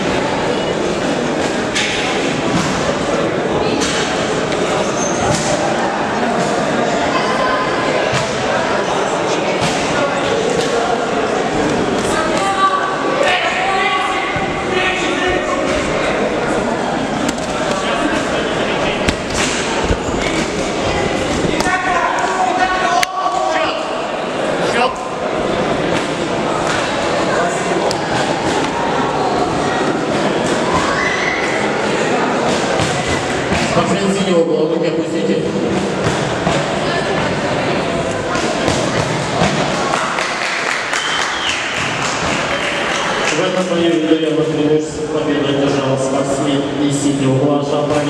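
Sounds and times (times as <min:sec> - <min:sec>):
many voices shouting echoing: 0:00.0 - 0:46.9.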